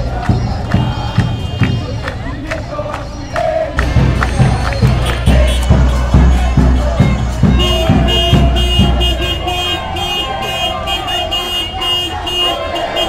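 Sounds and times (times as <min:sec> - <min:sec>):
car alarm beeping: 0:04.4 - 0:13.0.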